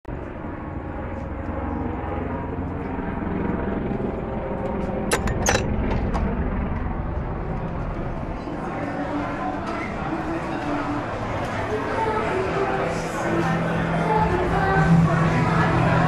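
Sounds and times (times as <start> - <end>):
urban background rumble: 0.1 - 16.0.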